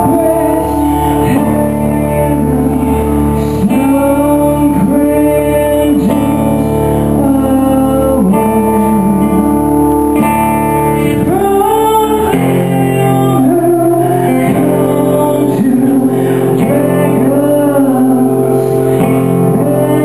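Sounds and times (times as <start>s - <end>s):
acoustic guitar chords: 0.0s - 20.0s
woman singing: 0.0s - 20.0s.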